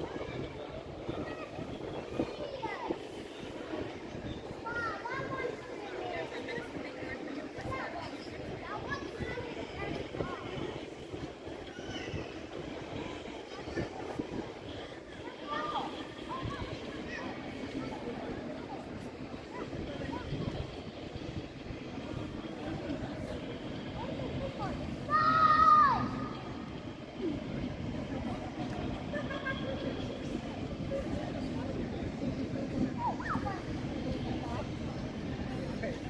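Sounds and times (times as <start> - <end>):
distant voices: 0.0 - 36.0
low city rumble: 0.0 - 36.0.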